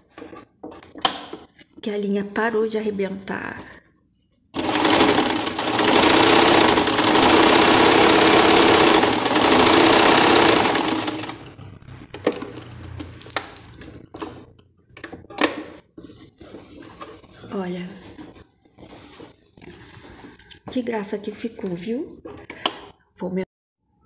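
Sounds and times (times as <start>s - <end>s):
sewing machine running: 4.6s - 13.8s
fabric handling: 15.8s - 20.5s.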